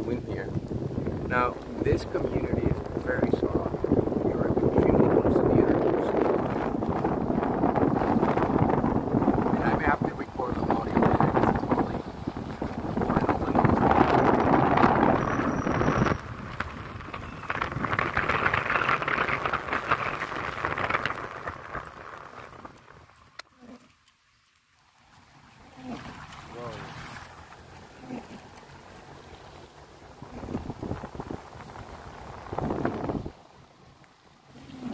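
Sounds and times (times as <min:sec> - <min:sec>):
car road noise: 0:00.0 - 0:23.4, 0:25.1 - 0:34.9
wind noise on microphone: 0:00.0 - 0:23.9, 0:27.9 - 0:33.6.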